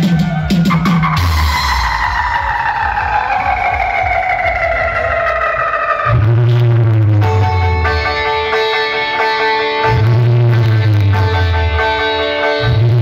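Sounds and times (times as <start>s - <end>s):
deep bass note: 0.0s - 8.4s, 9.9s - 11.9s
synthesizer tone sliding down: 0.0s - 8.6s
loud electronic music on loudspeakers: 0.0s - 13.0s.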